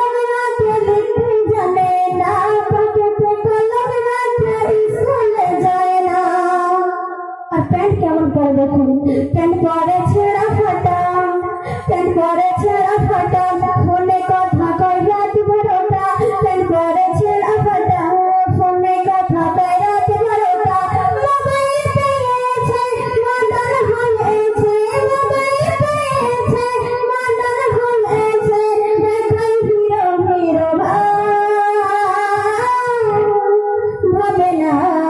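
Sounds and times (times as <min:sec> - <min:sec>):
woman singing through microphone: 0:00.0 - 0:35.0.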